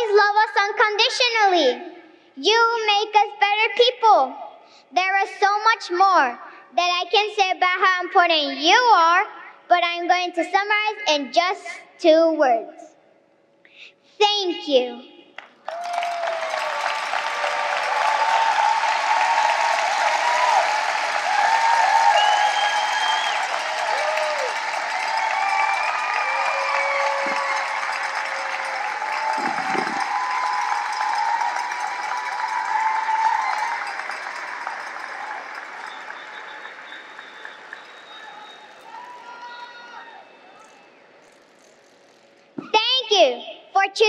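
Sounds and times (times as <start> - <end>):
audience applauding: 15.6 - 39.4
crowd cheering and whooping: 15.6 - 41.0.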